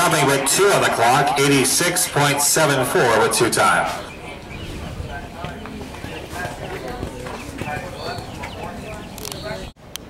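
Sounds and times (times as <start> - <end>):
people talking indistinctly: 0.0 - 9.8
horse hoofbeats: 3.8 - 9.7.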